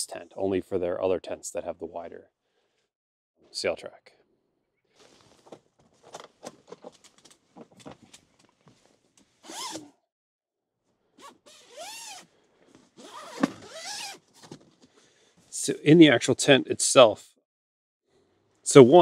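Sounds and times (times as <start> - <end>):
fabric zipper pulled: 9.4 - 9.9, 11.2 - 12.3, 13.0 - 14.2.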